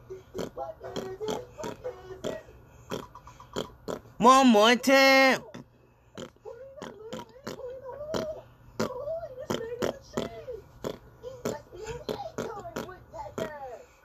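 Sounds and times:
person beatboxing: 0.3 - 3.1.

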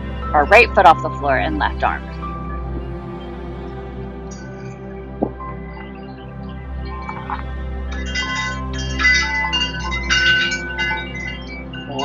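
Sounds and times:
low drone: 0.0 - 12.0
bright chimes ringing: 7.0 - 12.0.

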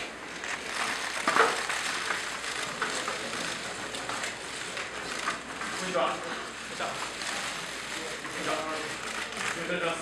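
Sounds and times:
crowd shuffling and rustling: 0.0 - 10.0
camera shutters clicking: 0.4 - 4.3, 7.1 - 9.7.

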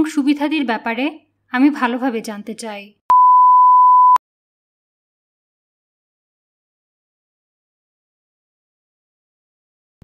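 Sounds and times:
electronic beep tone: 3.1 - 4.2.

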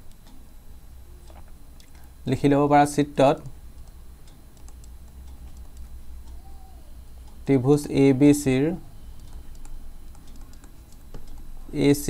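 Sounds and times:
low steady hum: 0.0 - 12.0
man speaking: 2.2 - 3.6, 7.4 - 8.8, 11.6 - 12.0.

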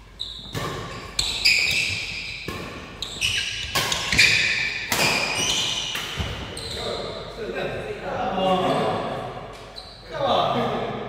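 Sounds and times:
badminton racket hitting shuttlecock: 0.4 - 6.4
players calling out and talking: 5.4 - 11.0.

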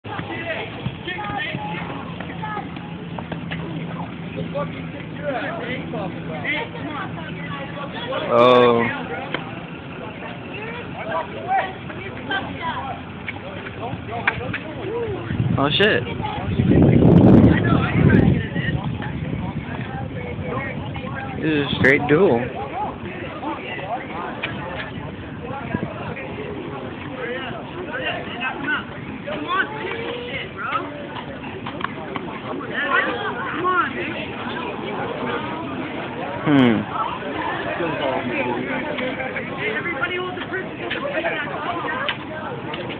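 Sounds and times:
bystanders talking: 0.0 - 42.9
distant crowd shouting: 0.0 - 42.9.

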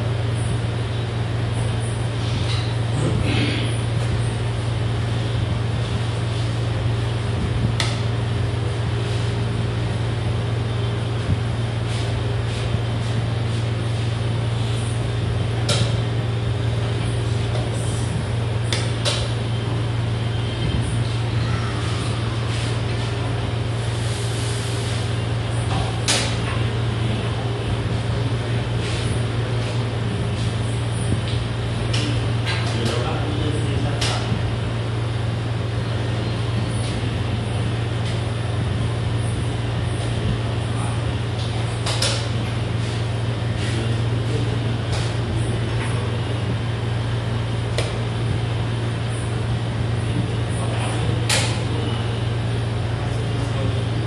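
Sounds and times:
low mechanical hum: 0.0 - 54.0.

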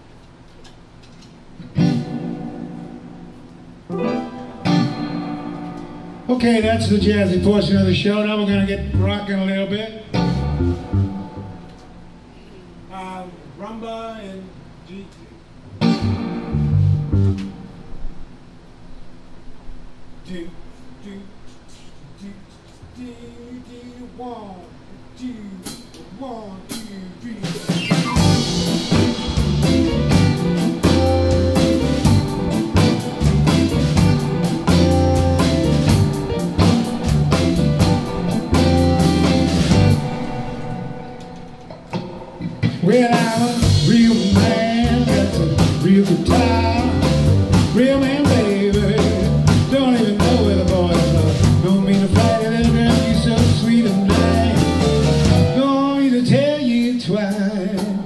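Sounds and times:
blues-rock band playing: 1.6 - 8.1, 10.1 - 12.1, 15.8 - 17.9, 27.4 - 58.0
man singing: 42.7 - 58.0.

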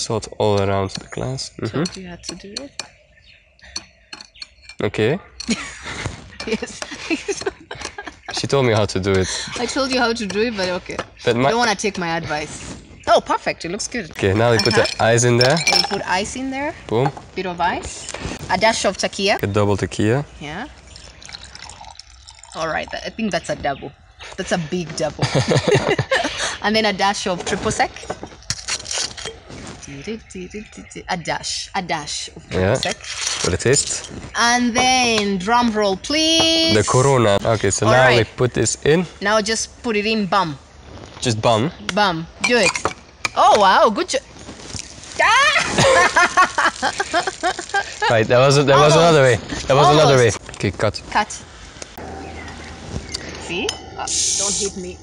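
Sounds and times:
glass scraping on wooden board: 6.1 - 12.4, 14.2 - 17.3, 32.5 - 35.3
liquid pouring over ice: 20.8 - 22.7.

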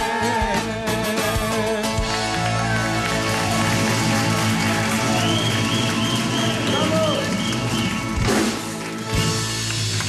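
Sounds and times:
live band playing instrumental: 0.0 - 10.0.

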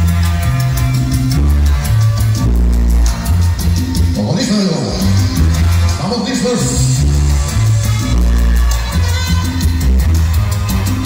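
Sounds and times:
dance music over loudspeakers: 0.0 - 11.0
fast steady percussion: 0.0 - 11.0
heavy bass line: 0.0 - 11.0.

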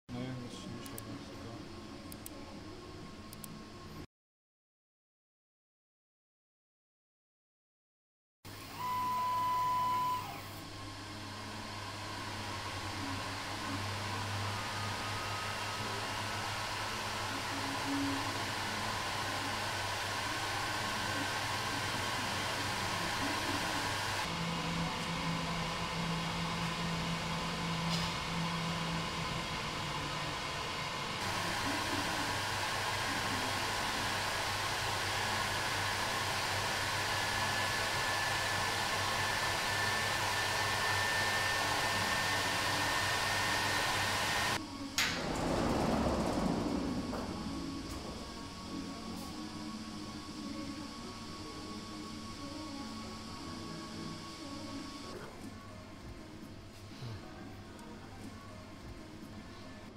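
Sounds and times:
machine whir and air rush: 8.5 - 55.2
faint high whines: 8.5 - 56.6
low hum: 44.6 - 56.4.

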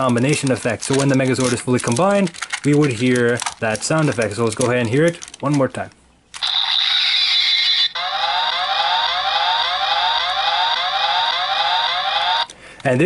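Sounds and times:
high electronic tone: 6.4 - 12.5
siren-like rising whoop: 8.0 - 12.4.

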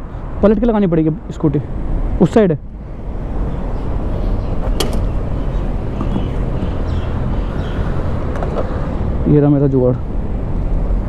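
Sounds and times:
handling noises: 4.6 - 7.0.

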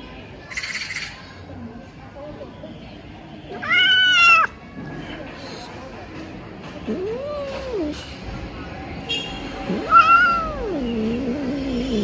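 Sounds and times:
kitten meowing: 3.6 - 4.5, 9.7 - 11.0.

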